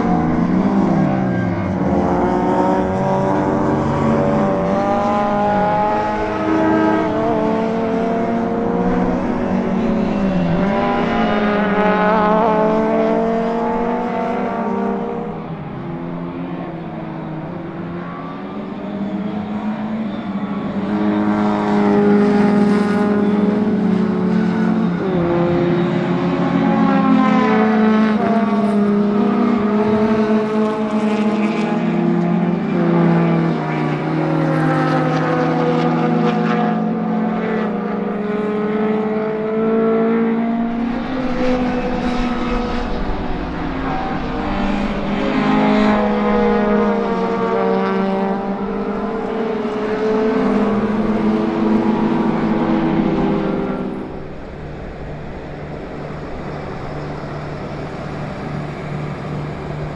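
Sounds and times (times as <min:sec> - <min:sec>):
racing car engines passing: 0:00.0 - 0:59.9.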